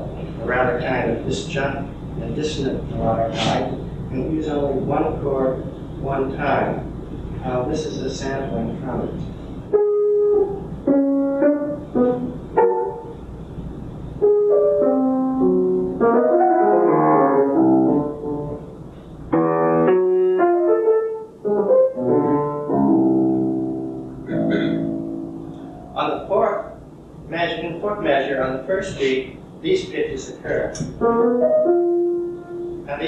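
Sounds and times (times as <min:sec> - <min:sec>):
person speaking: 0:00.0 - 0:06.8, 0:25.5 - 0:30.9
dissonant piano melody: 0:09.7 - 0:26.8, 0:31.0 - 0:33.0.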